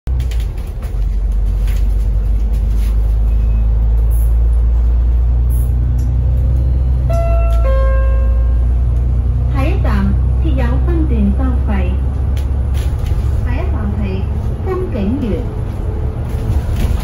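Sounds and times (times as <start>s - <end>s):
bus cabin rumble: 0.1s - 17.0s
two-note falling chime: 7.1s - 8.6s.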